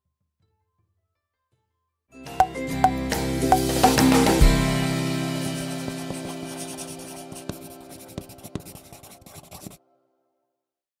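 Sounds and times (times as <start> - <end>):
background music: 2.2 - 9.8
pencil scratching on paper: 5.4 - 9.8
pencil lead clicks: 7.1 - 9.8.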